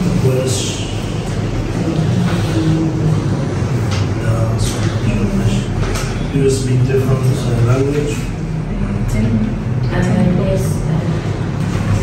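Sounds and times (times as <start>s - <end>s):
classroom chatter: 0.0s - 12.0s.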